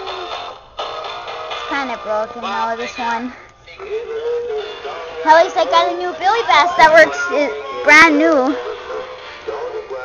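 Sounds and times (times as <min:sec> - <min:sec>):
toy playing song through small speaker: 0:00.0 - 0:10.0.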